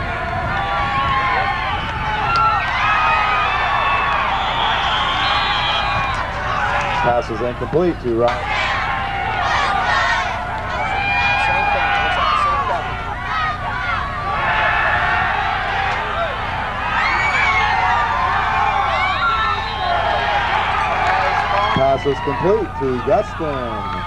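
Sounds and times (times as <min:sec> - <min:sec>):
crowd shouting and cheering: 0:00.0 - 0:24.0.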